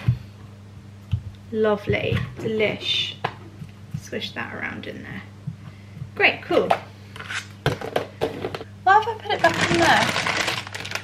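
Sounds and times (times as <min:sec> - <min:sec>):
woman speaking: 0:01.5 - 0:03.3, 0:04.0 - 0:05.3, 0:06.2 - 0:06.9, 0:08.8 - 0:10.2.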